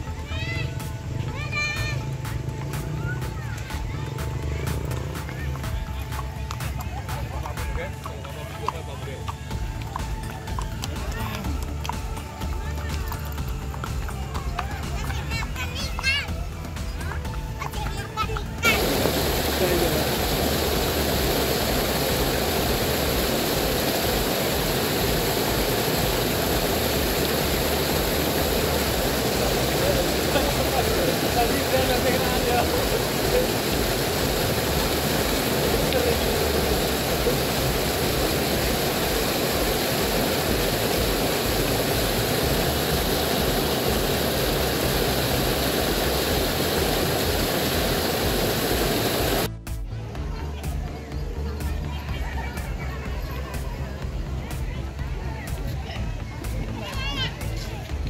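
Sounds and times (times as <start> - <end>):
waterfall rushing into pool: 17.0 - 49.5.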